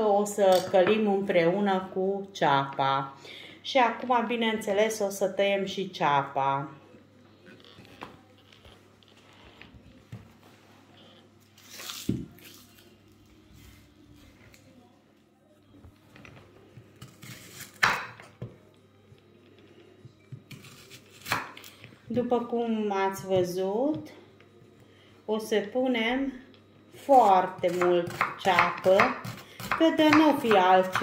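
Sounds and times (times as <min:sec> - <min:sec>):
knife cutting onions: 0:17.0 - 0:18.2, 0:20.5 - 0:21.8, 0:27.0 - 0:31.0.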